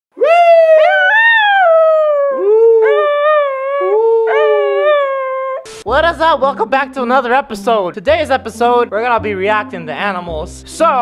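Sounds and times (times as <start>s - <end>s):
dog howling: 0.2s - 5.7s
man howling: 0.2s - 5.7s.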